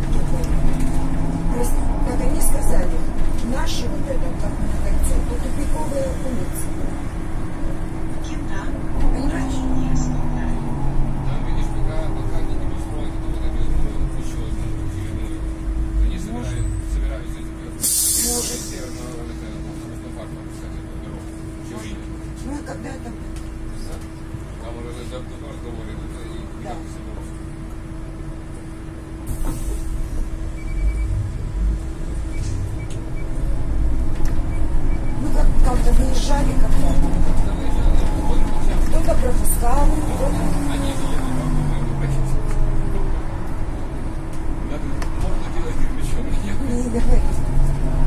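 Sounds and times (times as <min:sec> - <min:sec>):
compressed air hiss: 0:17.8 - 0:19.0
steady hum: 0:27.5 - 0:48.0.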